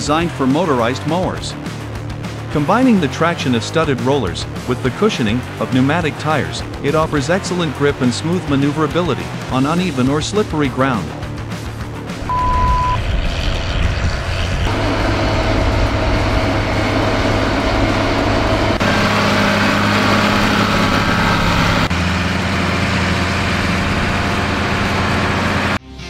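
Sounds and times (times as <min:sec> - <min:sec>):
tractor engine running under load: 0:12.0 - 0:25.8
short high beep: 0:12.2 - 0:13.0.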